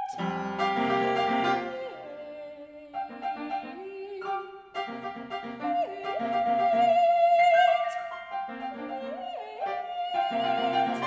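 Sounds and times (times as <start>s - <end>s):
piano chords: 0.0s - 11.0s
soprano singing: 0.0s - 11.0s.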